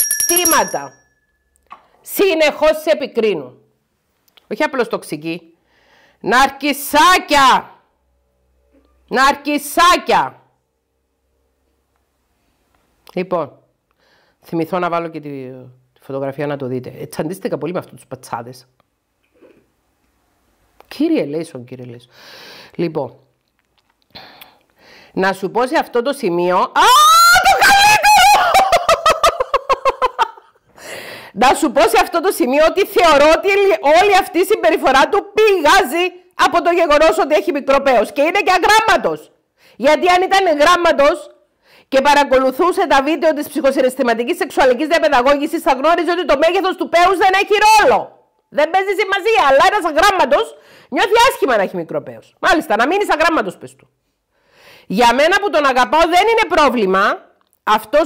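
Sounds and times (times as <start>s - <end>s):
smartphone notification tone: 0.0s - 0.9s
woman speaking: 0.3s - 0.9s, 2.0s - 3.6s, 9.1s - 10.4s, 31.4s - 53.8s, 54.9s - 58.0s
woman laughing loudly: 27.6s - 30.6s.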